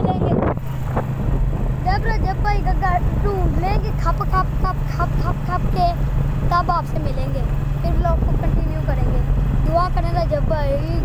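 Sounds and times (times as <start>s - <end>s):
boy talking: 0.0s - 0.6s, 1.8s - 11.0s
vehicle rumbling: 0.0s - 11.0s
wind: 0.0s - 11.0s.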